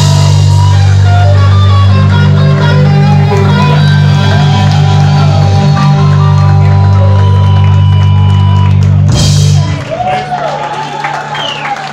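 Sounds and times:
rock band holding distorted chord: 0:00.0 - 0:10.2.

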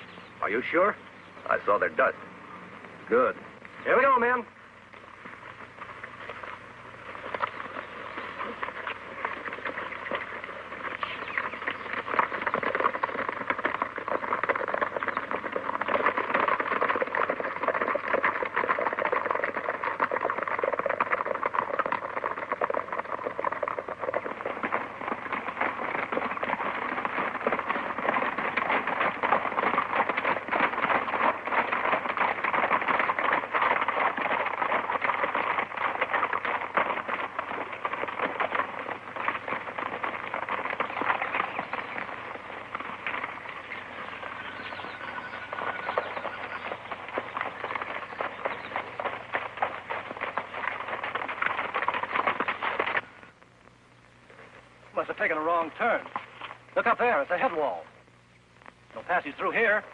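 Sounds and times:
horse hooves on rocky trail: 0:00.0 - 0:53.6, 0:54.2 - 0:57.8.

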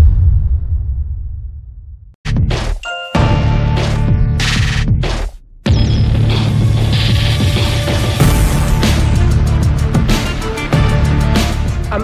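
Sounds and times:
deep bass hit: 0:00.0 - 0:02.7.

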